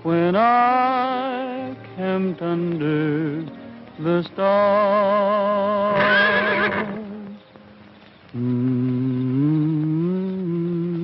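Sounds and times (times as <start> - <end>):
horse whinnying: 5.9 - 7.0
man humming a slow tune: 8.3 - 11.0.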